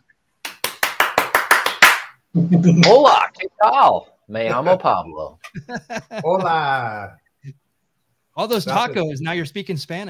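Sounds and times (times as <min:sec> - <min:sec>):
hands clapping: 0:00.4 - 0:02.2.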